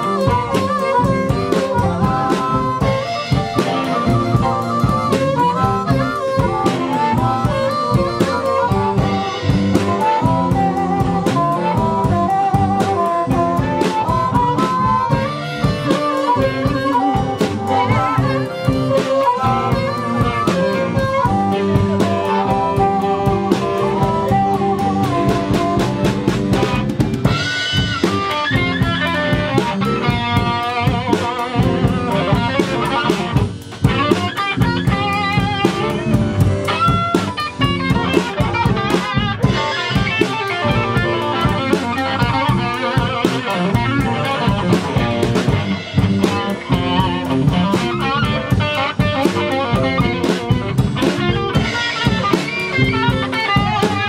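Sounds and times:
blues band playing: 0:00.0 - 0:54.0
electric guitar: 0:00.0 - 0:54.0
harmonica lead: 0:00.0 - 0:54.0.

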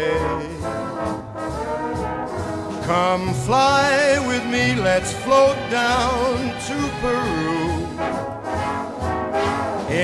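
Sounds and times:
singing in swing song: 0:00.0 - 0:00.9, 0:02.8 - 0:08.0
big band brass playing: 0:00.0 - 0:10.0.

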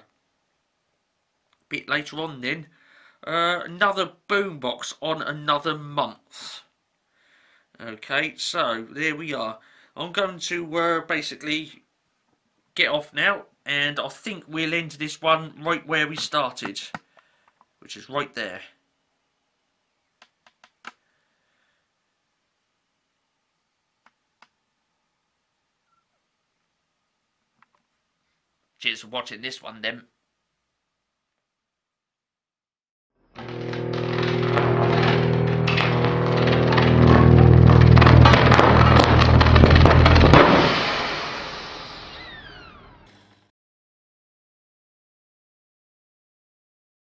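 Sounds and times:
electrical buzz with crackling: 0:33.3 - 0:43.2
falling whistling tones: 0:41.4 - 0:43.0.

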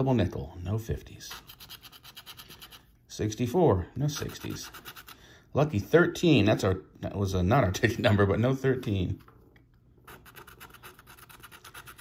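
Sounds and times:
scratching lottery ticket: 0:01.2 - 0:02.9, 0:04.0 - 0:05.2, 0:10.0 - 0:12.0.

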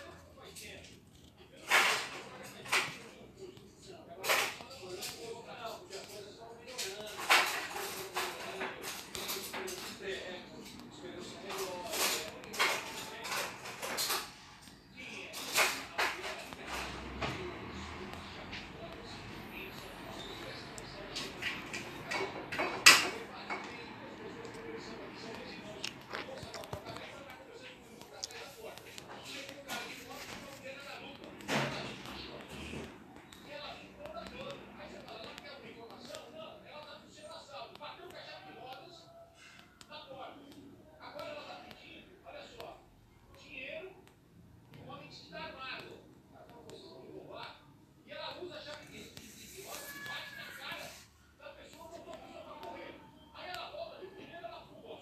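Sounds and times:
indistinct background talking: 0:00.0 - 0:55.0.

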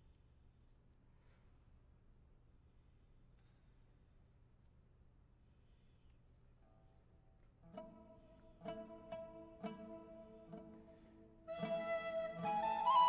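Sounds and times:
oud plucked notes: 0:07.7 - 0:13.0
wooden flute held notes: 0:10.6 - 0:13.0.

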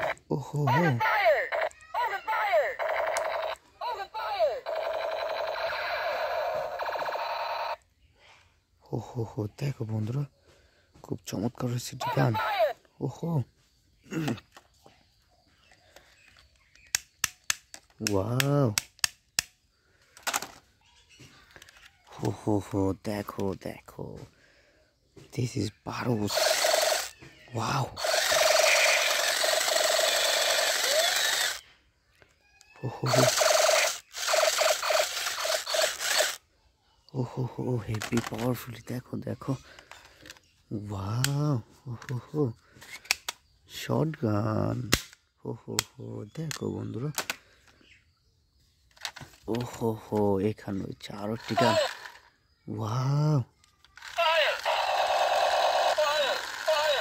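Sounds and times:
toy machine gun buzzing rattle: 0:01.3 - 0:03.6, 0:04.4 - 0:07.8, 0:26.2 - 0:31.6, 0:33.0 - 0:36.4, 0:51.4 - 0:52.3, 0:53.8 - 0:57.0.

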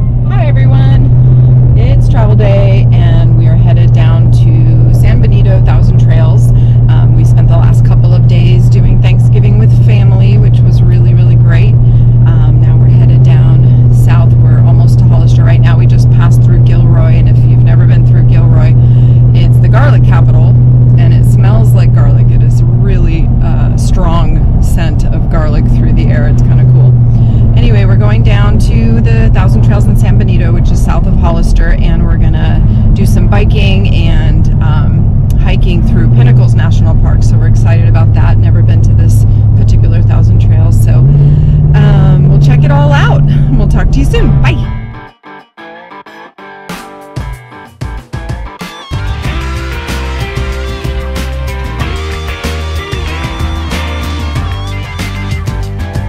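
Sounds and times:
truck engine drone: 0:00.0 - 0:45.1, 0:48.6 - 0:56.0
woman talking: 0:00.2 - 0:44.8.

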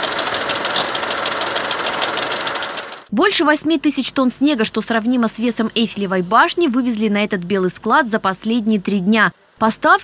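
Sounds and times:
tractor engine running: 0:00.0 - 0:03.1.

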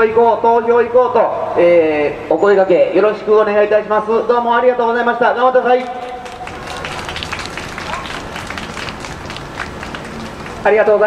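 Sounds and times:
voices in crowd: 0:05.7 - 0:11.0
crowd applauding: 0:05.8 - 0:11.0.

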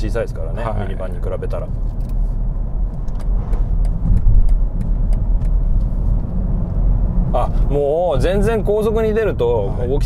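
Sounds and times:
tyre and road rumble: 0:01.4 - 0:08.7.

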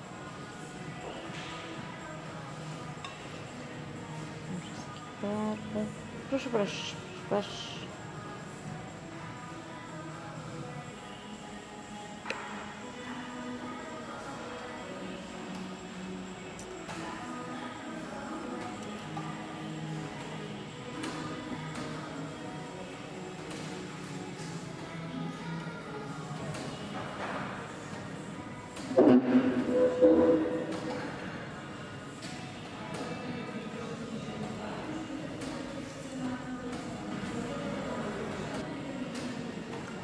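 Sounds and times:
murmur of voices: 0:28.9 - 0:40.0.

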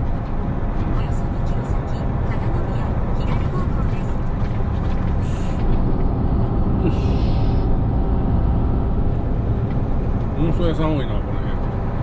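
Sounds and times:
road noise: 0:00.0 - 0:12.0
truck engine running: 0:00.0 - 0:12.0.

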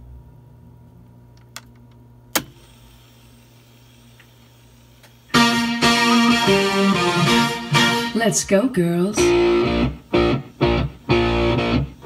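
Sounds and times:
steady low hum: 0:00.0 - 0:12.0
recorded music with guitar: 0:05.3 - 0:12.0.

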